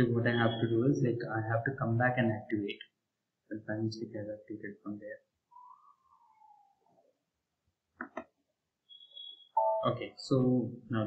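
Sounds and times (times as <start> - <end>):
soft whistle under the breath: 8.9 - 9.8.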